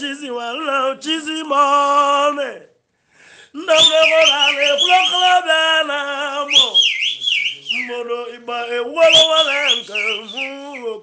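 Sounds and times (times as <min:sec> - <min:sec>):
man singing with vibrato: 0:00.0 - 0:02.8, 0:03.4 - 0:11.0
high swooping whistles: 0:03.7 - 0:05.6, 0:06.4 - 0:08.1, 0:09.0 - 0:11.0.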